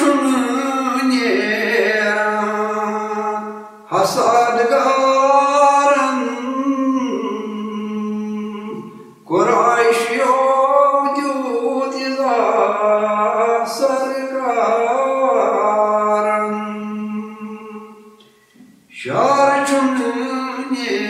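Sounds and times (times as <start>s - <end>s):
man singing devotional song: 0.0s - 21.0s.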